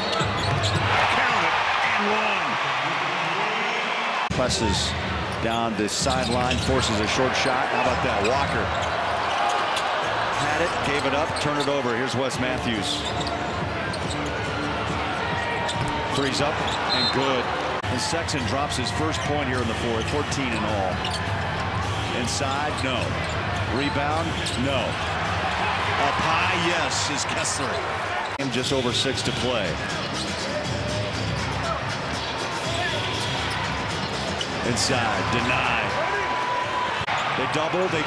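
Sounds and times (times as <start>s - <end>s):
arena crowd noise: 0.0s - 38.0s.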